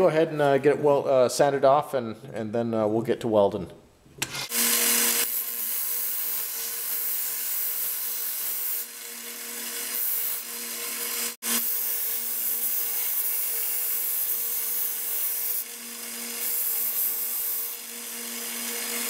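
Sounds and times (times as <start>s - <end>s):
belt sander motor hum: 4.3s - 19.0s.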